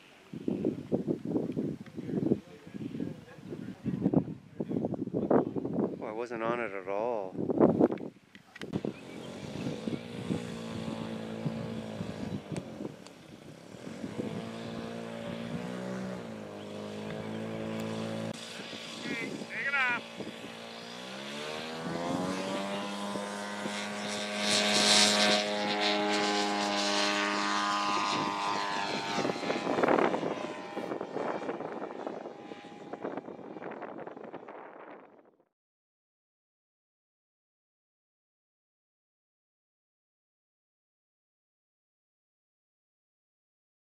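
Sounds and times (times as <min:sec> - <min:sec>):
model plane propeller engine: 0:08.5 - 0:35.2.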